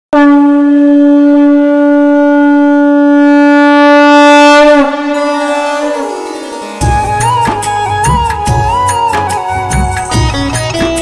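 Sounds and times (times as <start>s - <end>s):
conch shell blown in long note: 0.1s - 10.6s.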